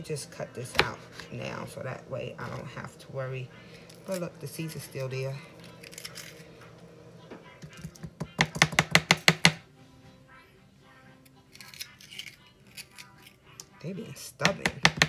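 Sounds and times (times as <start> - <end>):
knife chopping on plastic board: 7.7 - 9.6, 14.4 - 15.0.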